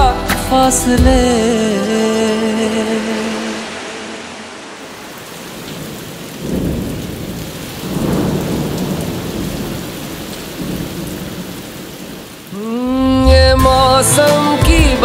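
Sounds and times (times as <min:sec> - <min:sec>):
song: 0:00.0 - 0:06.0, 0:12.5 - 0:15.0
rain hiss: 0:01.6 - 0:14.6
low thunder rolls: 0:02.8 - 0:13.8.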